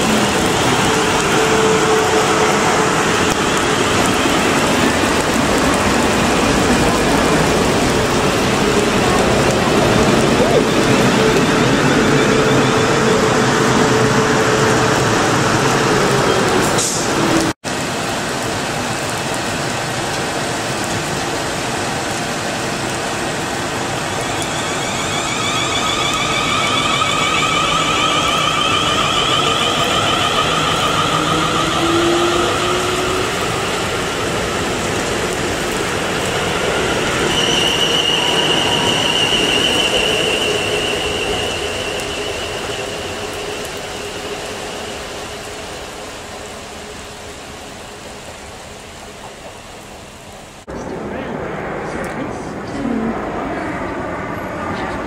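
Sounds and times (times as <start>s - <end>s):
electric train running: 0.0s - 17.5s, 22.6s - 49.4s
high-pitched train whines: 0.0s - 17.6s, 21.6s - 55.0s
rain falling: 0.0s - 54.8s.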